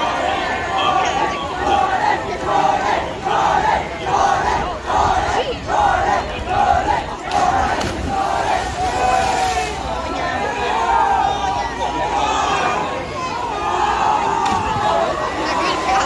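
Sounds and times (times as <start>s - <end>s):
crowd of teenagers shouting: 0.0s - 16.0s.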